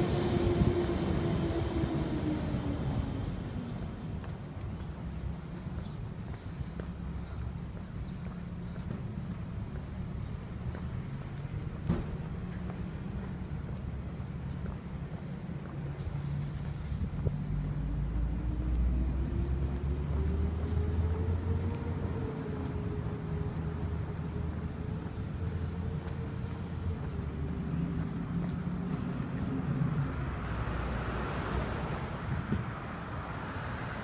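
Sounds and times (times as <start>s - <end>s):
road noise: 0.0s - 34.0s
vehicle engine rumbling: 0.0s - 34.0s.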